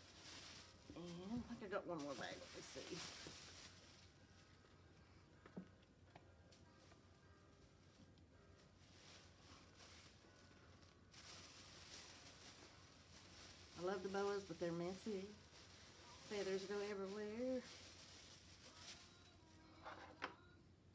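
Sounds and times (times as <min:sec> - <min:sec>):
plastic bag rustling: 0:00.0 - 0:04.8, 0:06.5 - 0:20.2.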